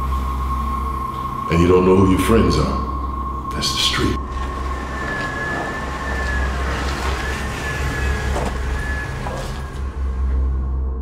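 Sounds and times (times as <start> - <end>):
distant wavering siren: 0.0 - 11.0
low steady rumble: 0.0 - 11.0.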